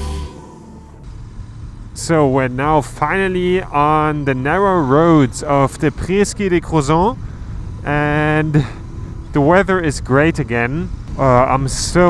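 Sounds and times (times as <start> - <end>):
motorcycle engine rumble: 0.0 - 12.0
wind: 0.0 - 12.0
man talking: 2.0 - 7.2, 7.8 - 12.0.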